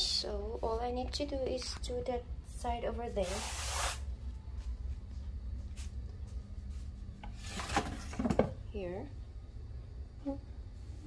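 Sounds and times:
low rumble and faint hum: 0:00.0 - 0:03.4, 0:04.0 - 0:11.0.

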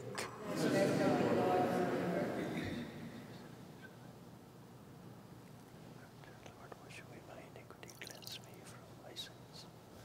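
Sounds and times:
person whispering a prayer: 0:06.1 - 0:09.8
water splashing into a bowl: 0:07.9 - 0:08.5.

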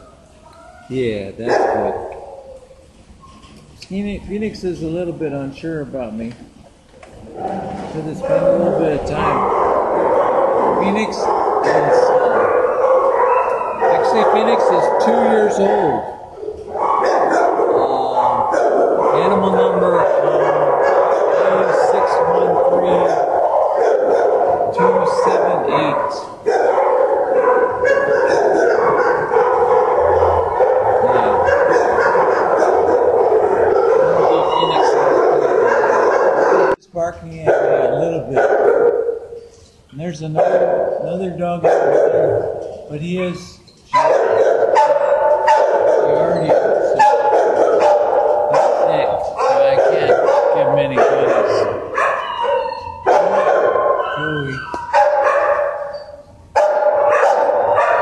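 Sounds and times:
many dogs barking: 0:00.0 - 0:02.8, 0:07.2 - 0:36.8, 0:37.4 - 0:39.4, 0:40.1 - 0:58.0.

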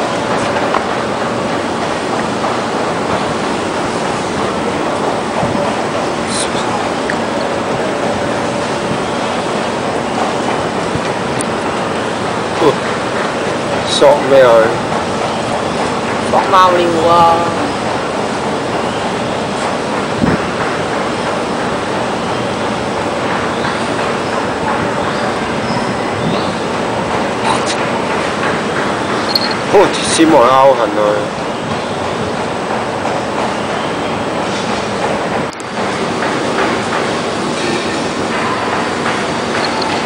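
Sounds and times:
steady rushing noise: 0:00.0 - 0:40.0.

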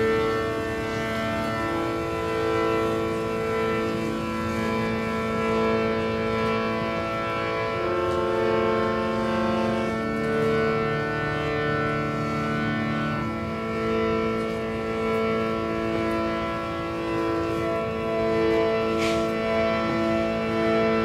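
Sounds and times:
harmonium drone chord: 0:00.0 - 0:21.0.

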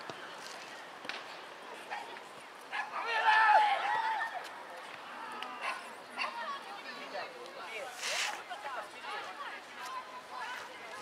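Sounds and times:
young players shouting: 0:02.9 - 0:04.4.

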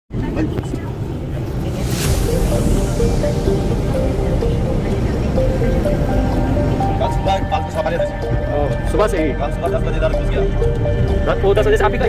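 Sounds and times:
engine and road rumble: 0:00.1 - 0:12.0.

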